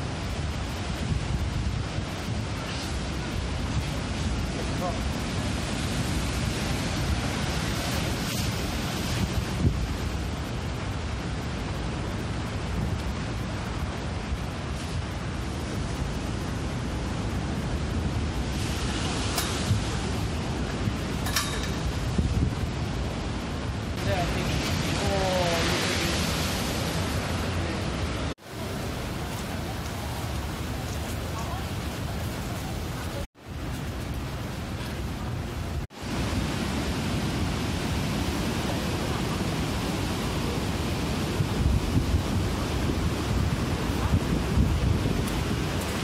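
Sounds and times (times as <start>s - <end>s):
storm surf rushing: 0.0s - 46.0s
wind buffeting microphone: 0.0s - 46.0s.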